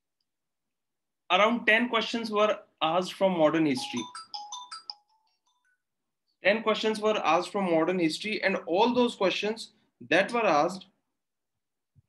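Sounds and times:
electronic notification chime: 0:03.7 - 0:05.6.

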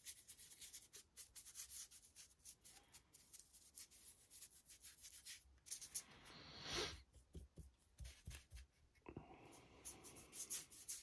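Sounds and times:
paintbrush scratching on plastic: 0:00.0 - 0:06.2, 0:09.8 - 0:11.0.

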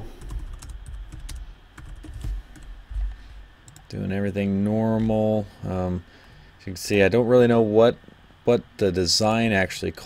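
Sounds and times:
typing on computer keyboard: 0:00.2 - 0:02.7.

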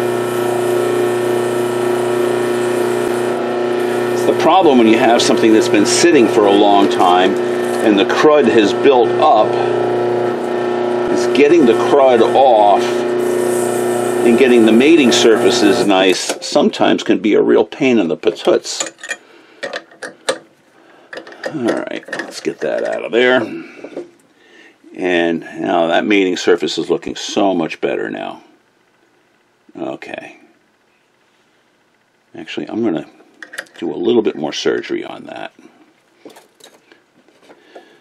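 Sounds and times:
drill chuck clicking and rattling: 0:18.8 - 0:20.5, 0:21.1 - 0:23.1.

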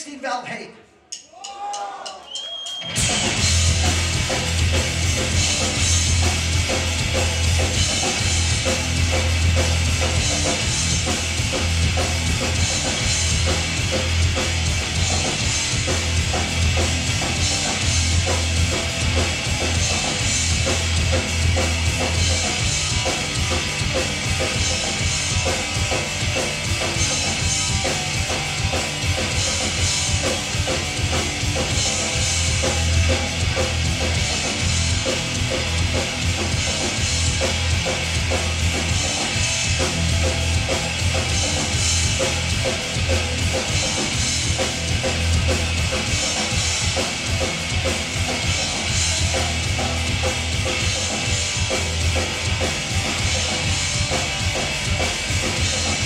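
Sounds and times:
punk band playing live: 0:01.4 - 0:56.0.

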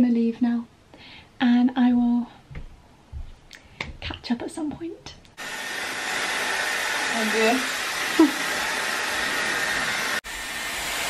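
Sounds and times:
hair styler blowing air: 0:05.4 - 0:11.0.

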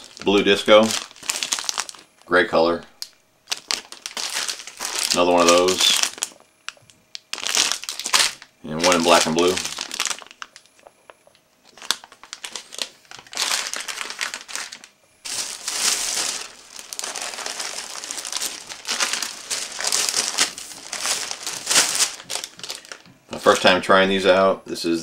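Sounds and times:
plastic bag crinkling: 0:00.0 - 0:02.3, 0:03.0 - 0:23.7.

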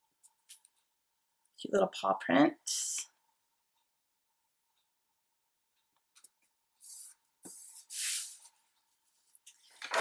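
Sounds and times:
page turning scrape: 0:06.8 - 0:08.5
paper rustling and scraping: 0:06.8 - 0:08.6.

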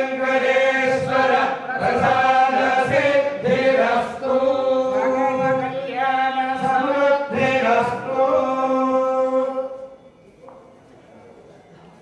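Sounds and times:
men chanting in held notes: 0:00.0 - 0:09.8.

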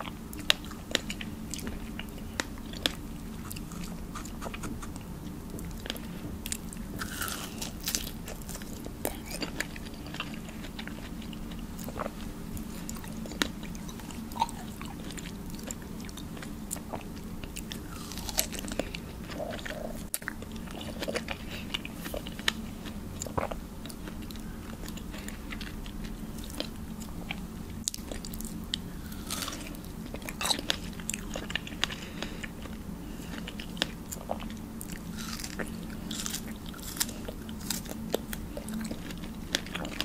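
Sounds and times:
biting and chewing strawberries: 0:00.0 - 0:40.0.

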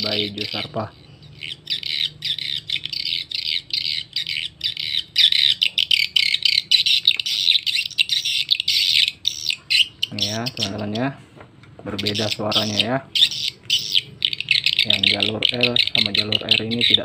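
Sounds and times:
recorded bird chirps from tweeter: 0:00.0 - 0:11.1, 0:11.9 - 0:17.0.

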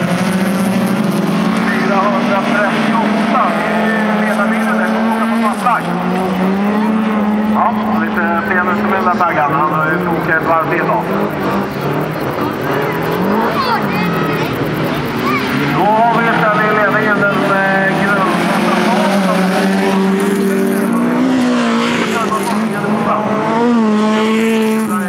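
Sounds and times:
car engines revving: 0:00.0 - 0:25.0.

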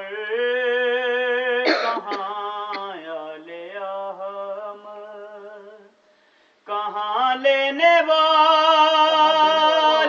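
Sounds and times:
loud cough: 0:01.6 - 0:02.9.

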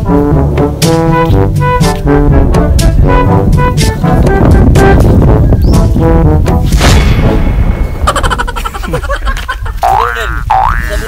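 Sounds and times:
background music with low beat: 0:00.0 - 0:08.4.

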